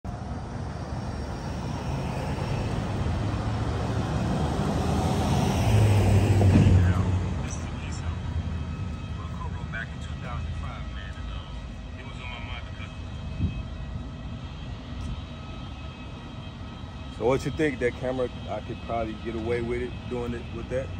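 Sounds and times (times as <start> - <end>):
vehicle passing: 0.1 - 11.1.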